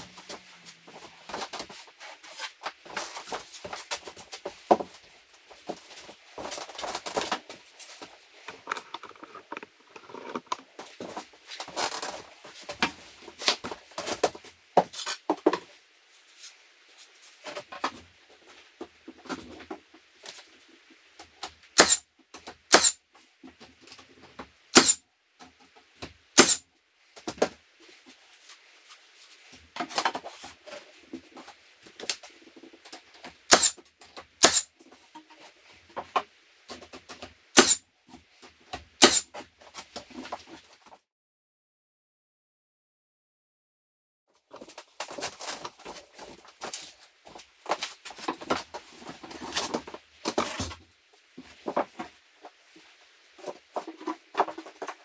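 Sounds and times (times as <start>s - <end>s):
boards knocking and scraping: 0.0s - 15.7s, 44.5s - 52.6s, 53.4s - 55.0s
nail gun shots: 21.8s - 22.0s, 22.7s - 23.0s, 24.7s - 25.0s, 26.4s - 26.6s, 33.5s - 33.8s, 34.4s - 34.7s, 37.6s - 37.8s, 39.0s - 39.3s.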